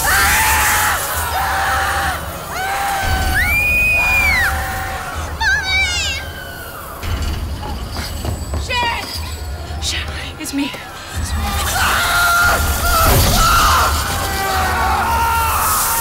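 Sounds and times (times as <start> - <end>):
people screaming in terror: 0.0 - 7.2, 11.2 - 16.0
low rumbling film score: 0.0 - 16.0.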